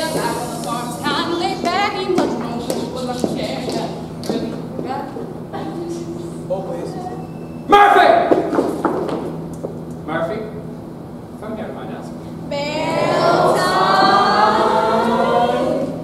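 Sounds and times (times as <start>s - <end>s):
footsteps on stage floor: 0.0s - 5.2s, 8.3s - 10.0s
steady low hum: 0.0s - 16.0s.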